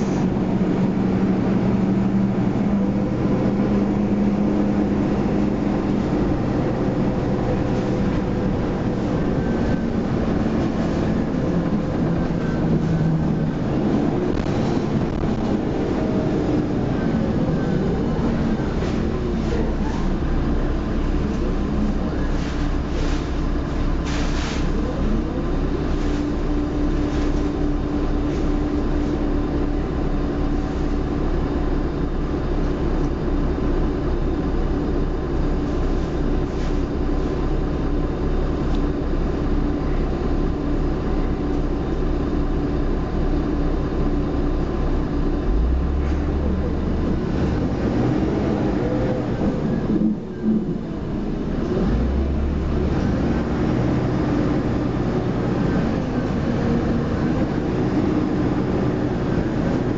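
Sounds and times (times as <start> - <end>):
bus engine and road noise: 0.0 - 59.9
drivetrain whine: 0.0 - 59.9.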